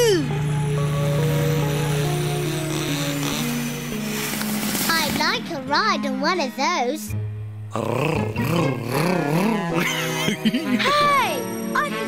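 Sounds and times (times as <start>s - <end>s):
cartoon snowmobile engine revving: 0.0s - 5.2s.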